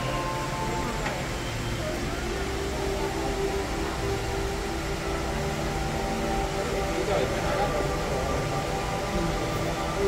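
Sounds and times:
room hum and hiss: 0:00.0 - 0:10.0.

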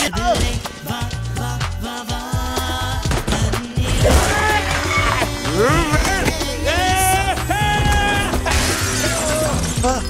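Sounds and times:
sustained film score music: 0:00.1 - 0:10.0
glass shattering: 0:08.2 - 0:10.0.

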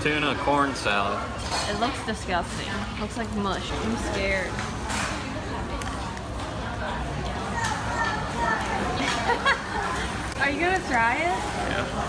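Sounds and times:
indistinct voices of diners: 0:00.0 - 0:12.0
room hubbub: 0:00.0 - 0:12.0
children's voices: 0:07.4 - 0:10.1.

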